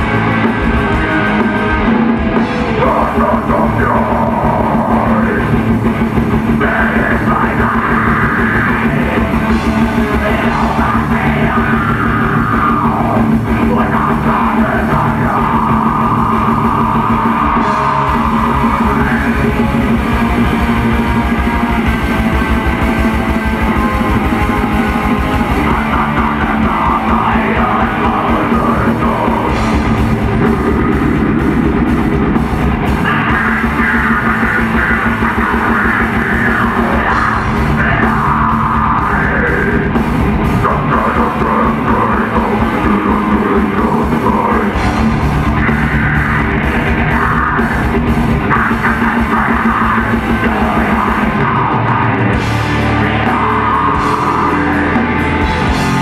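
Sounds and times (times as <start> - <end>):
distorted guitars and bass: 0.0 - 56.0
fast dense drumming: 0.0 - 56.0
harsh shouted vocal: 0.0 - 56.0.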